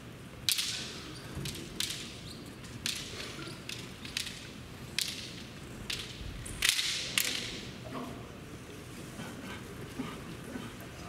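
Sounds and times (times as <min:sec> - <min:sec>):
bamboo swords clacking: 0:00.4 - 0:07.8.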